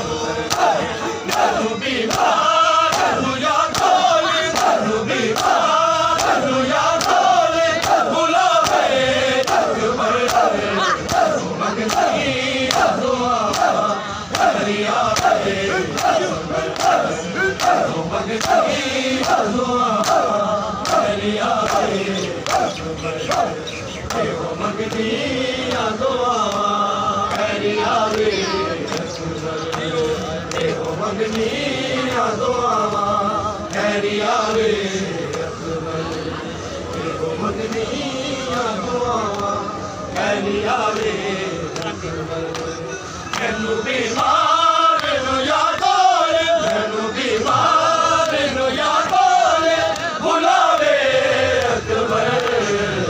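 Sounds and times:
men chanting in unison: 0.0 - 53.0.

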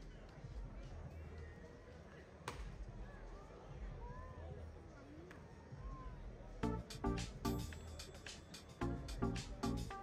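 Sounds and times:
faint crowd voices: 0.0 - 10.0
baseball smacking into mitt: 2.5 - 2.7.

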